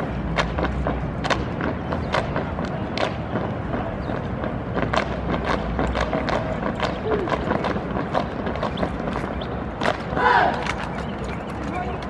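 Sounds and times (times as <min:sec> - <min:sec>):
boots stamping on asphalt: 0:00.0 - 0:11.0
voices murmuring: 0:01.7 - 0:12.0
rifles slapped and handled: 0:09.8 - 0:12.0.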